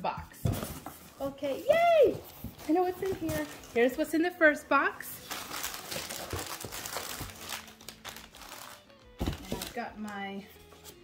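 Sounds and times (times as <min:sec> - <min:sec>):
plastic packaging crinkling: 0:02.5 - 0:04.0, 0:05.2 - 0:10.3.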